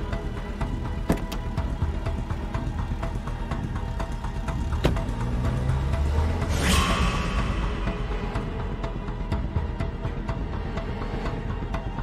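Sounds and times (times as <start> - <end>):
score music with sustained tones: 0.0 - 12.0.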